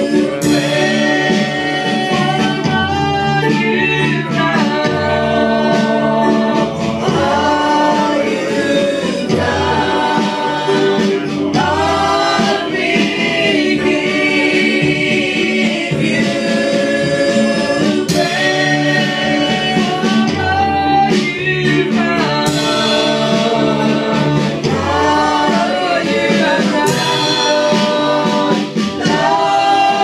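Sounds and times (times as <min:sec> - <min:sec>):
instrumental accompaniment: 0:00.0 - 0:30.0
voices singing praise song: 0:00.0 - 0:30.0.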